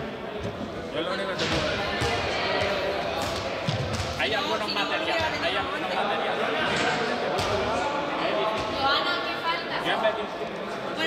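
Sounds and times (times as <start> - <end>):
many people talking: 0.0 - 11.0.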